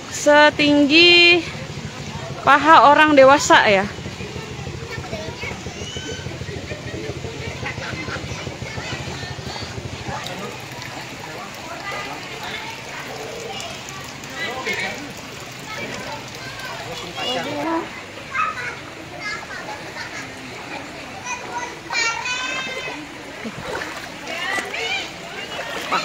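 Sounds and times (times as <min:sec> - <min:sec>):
water splashing: 0:00.0 - 0:26.0
children's voices calling: 0:03.7 - 0:26.0.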